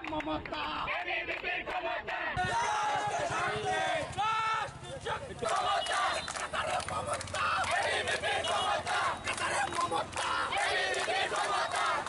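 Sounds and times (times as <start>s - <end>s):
crowd yelling together: 0.9s - 12.0s.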